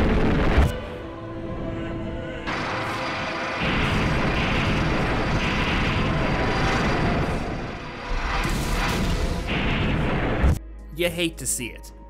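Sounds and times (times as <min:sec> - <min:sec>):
film music score: 0:00.0 - 0:12.0
explosion rumble: 0:03.6 - 0:10.6.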